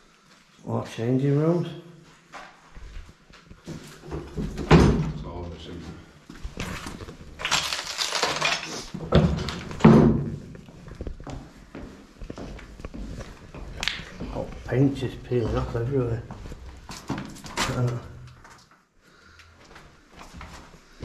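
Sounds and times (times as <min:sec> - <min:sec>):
footsteps on rubble: 0:06.2 - 0:17.8, 0:19.6 - 0:21.0.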